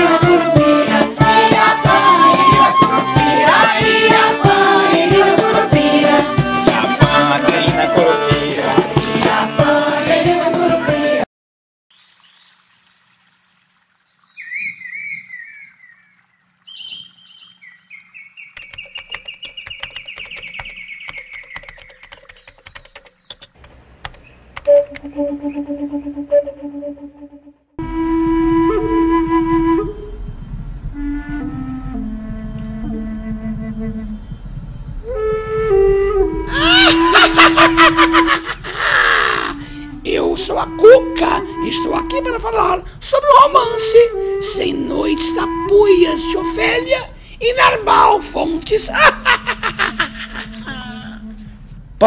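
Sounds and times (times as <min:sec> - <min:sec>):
background music note: 0:00.0 - 0:11.2, 0:23.6 - 0:38.5, 0:39.6 - 0:47.1
bird warbling and chirping: 0:14.1 - 0:23.4
quick repeated falling bird notes: 0:14.1 - 0:26.2
sharp clicks: 0:18.5 - 0:25.1
high cackling laugh: 0:36.5 - 0:39.6, 0:48.9 - 0:51.2
breathy hiss: 0:38.6 - 0:40.0, 0:47.1 - 0:47.4.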